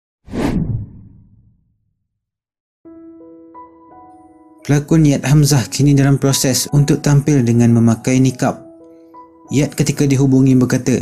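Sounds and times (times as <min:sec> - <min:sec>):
whoosh with low rumble: 0:00.3 - 0:01.9.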